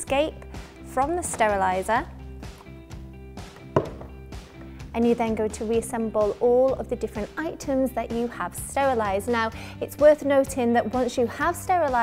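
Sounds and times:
background music: 0.0s - 12.0s
plastic lid knocking on wooden table: 3.7s - 4.2s.

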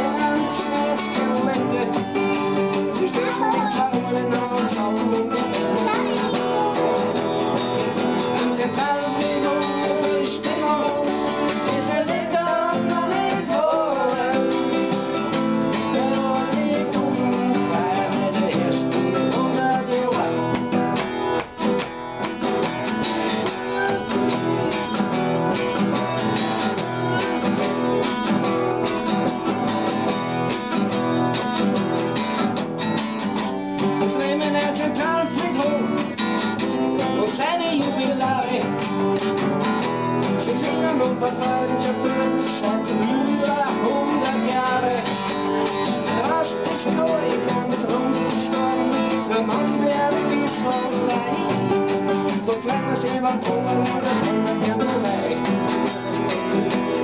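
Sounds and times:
man singing: 0.0s - 21.8s, 22.4s - 30.2s, 33.3s - 57.0s
acoustic guitar strumming: 0.0s - 57.0s.

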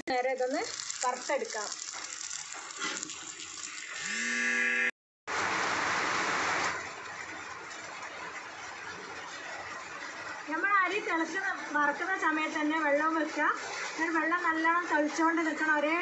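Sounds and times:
brief buzzing tone: 4.0s - 4.9s
water heating rushing hiss: 5.3s - 6.9s.

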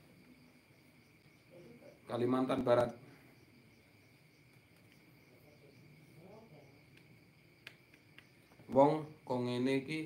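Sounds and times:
high-pitched cricket trill: 0.0s - 10.0s.

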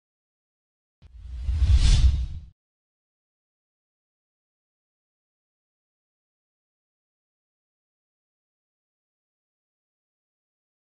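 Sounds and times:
whoosh with deep rumble: 1.1s - 2.5s.

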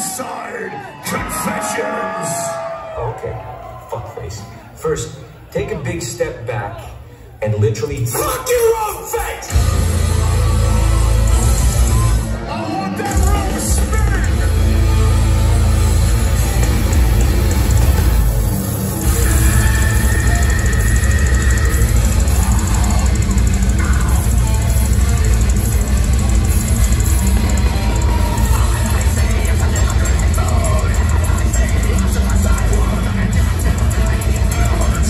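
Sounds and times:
metal band playing live: 8.3s - 35.0s.

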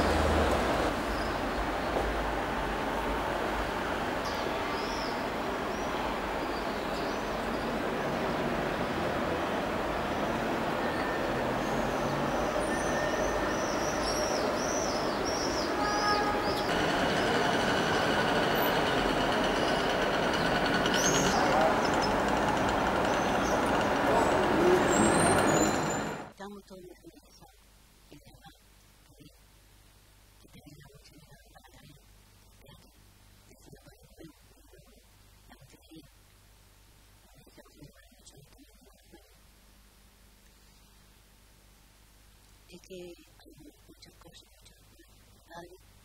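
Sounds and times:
traffic noise: 0.0s - 26.4s
many voices: 20.8s - 25.5s.

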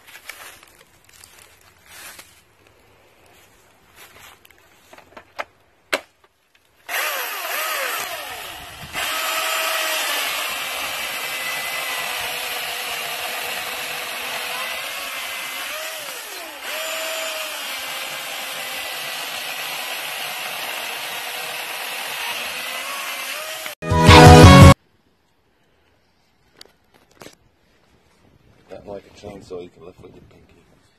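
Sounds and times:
chainsaw cutting log: 6.9s - 24.8s.

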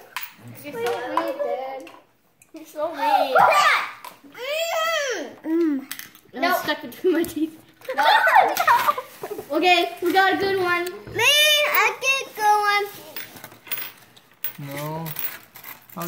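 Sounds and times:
children babbling and giggling: 2.8s - 13.2s.

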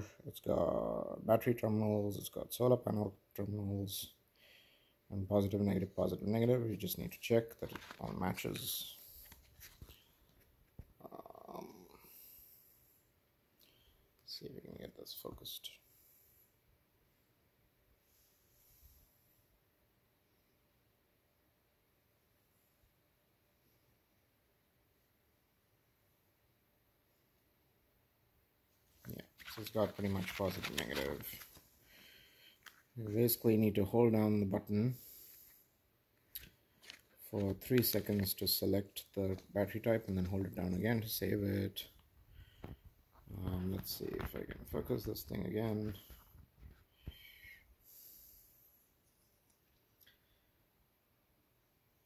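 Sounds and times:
man saying um: 11.0s - 11.9s.

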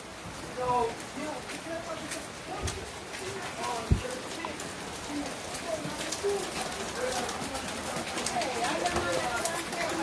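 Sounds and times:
people talking indistinctly: 0.5s - 10.0s.

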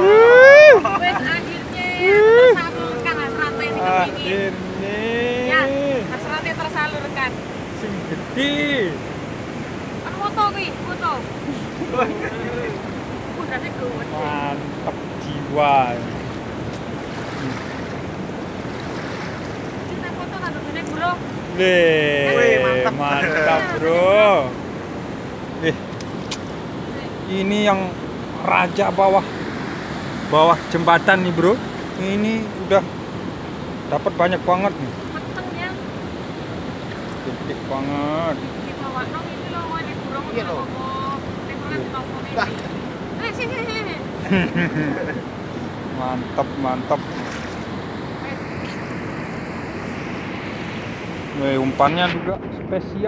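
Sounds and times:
road traffic: 0.0s - 27.2s
river water rushing: 0.0s - 51.8s
wind on microphone: 47.0s - 53.0s.

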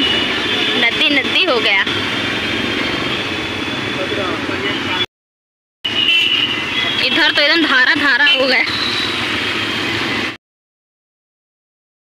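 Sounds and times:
traffic on wet road: 0.0s - 5.1s, 5.9s - 10.4s.

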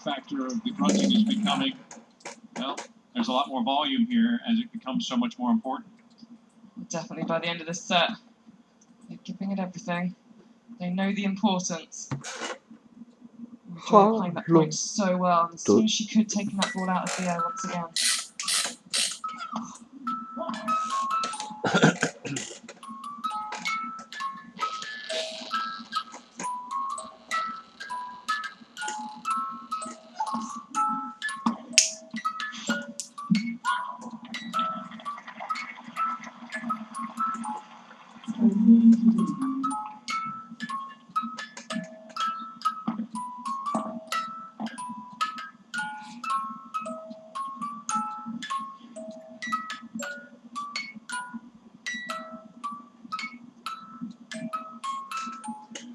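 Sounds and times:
toy music-box melody: 16.3s - 21.7s, 22.8s - 37.7s, 38.8s - 55.9s.

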